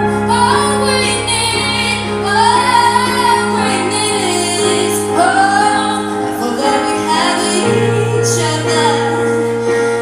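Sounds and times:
sustained backing chords: 0.0 - 10.0
woman singing a ballad: 0.0 - 10.0.

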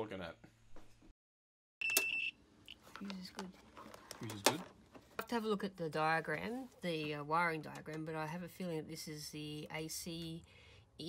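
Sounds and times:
multimeter continuity beep: 1.8 - 2.4.

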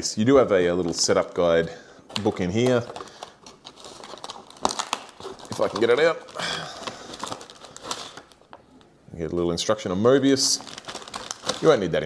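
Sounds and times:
paper and cardboard rustling: 0.7 - 8.4.

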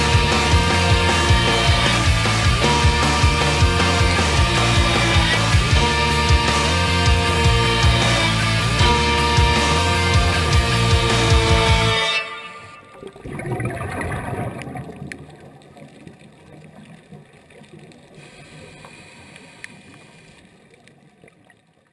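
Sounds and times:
rock background music: 0.0 - 12.6
underwater rushing wash: 12.7 - 21.7.

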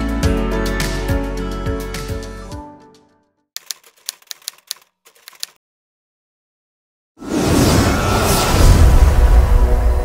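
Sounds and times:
background music: 0.0 - 3.3
typewriter keystroke clicks: 3.6 - 5.6.

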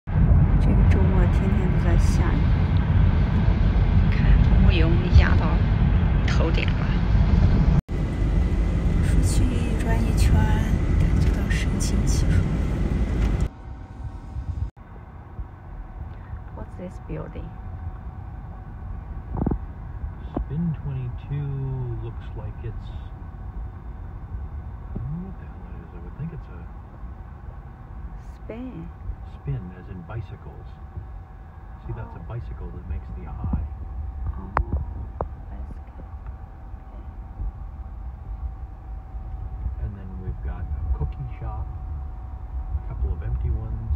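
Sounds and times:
car cabin road rumble: 0.1 - 43.9
person talking: 31.8 - 33.6.

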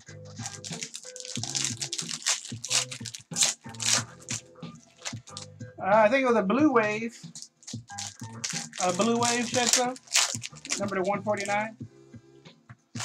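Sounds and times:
background music: 0.0 - 13.0
foil wrappers crinkling and tearing: 0.4 - 5.5, 7.4 - 11.7.

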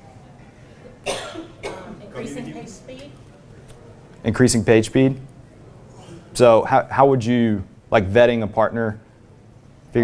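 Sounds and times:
person coughing: 1.0 - 2.4.

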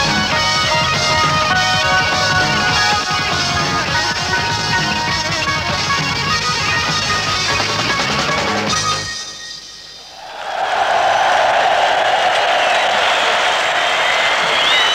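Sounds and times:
live rock band playing: 0.0 - 9.7
crowd cheering and applause: 10.0 - 14.9.

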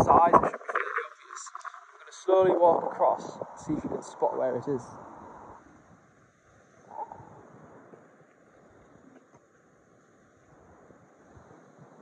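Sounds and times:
distant surf: 0.0 - 12.0
wind hiss: 0.0 - 12.0.

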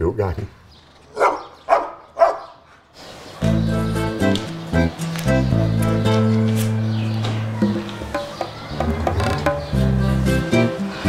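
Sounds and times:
dog barking: 1.1 - 2.8.

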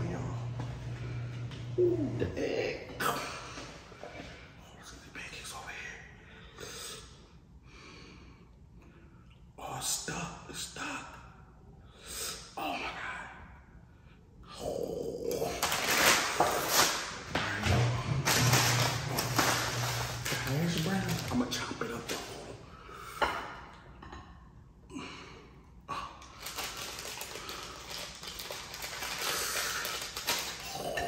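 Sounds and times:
paper wrappers crinkling: 15.4 - 22.5, 26.3 - 31.0.

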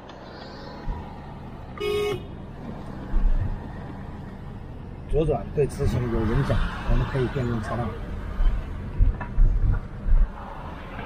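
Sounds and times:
road and engine noise in car: 0.0 - 11.0
car horn toot: 1.8 - 2.3.

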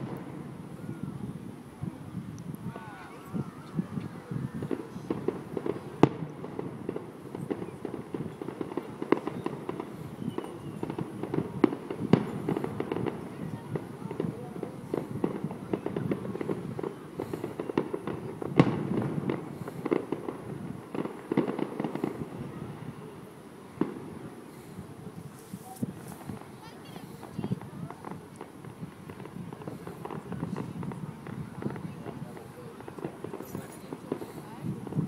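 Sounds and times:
fireworks bangs and crackles: 0.0 - 35.0.

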